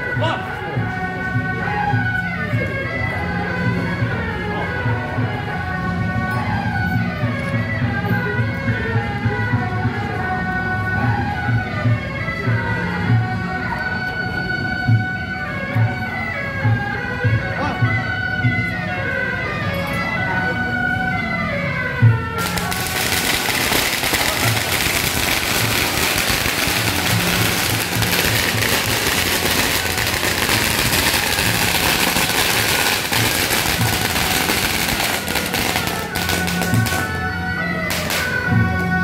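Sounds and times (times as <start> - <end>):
procession music: 14.5 - 39.0
firecracker bang: 22.4 - 37.1
firecrackers crackling: 22.4 - 38.6.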